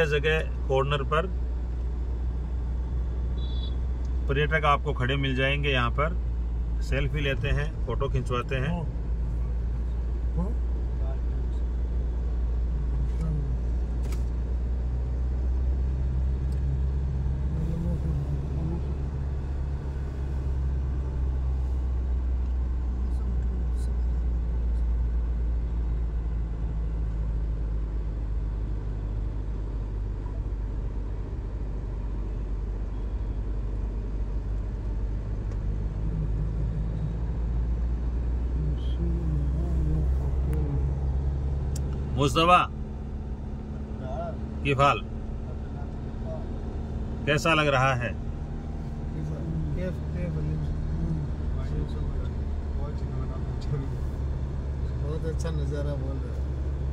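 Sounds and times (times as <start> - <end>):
car engine and tyre drone: 0.0 - 56.9.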